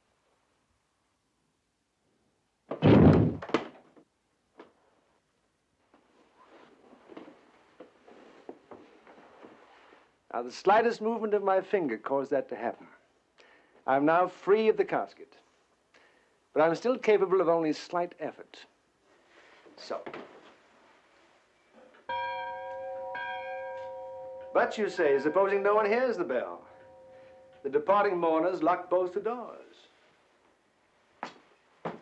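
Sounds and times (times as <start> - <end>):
faint rustling: 5.8 - 10.2, 19.0 - 28.6
alarm bell ringing: 22.1 - 28.5.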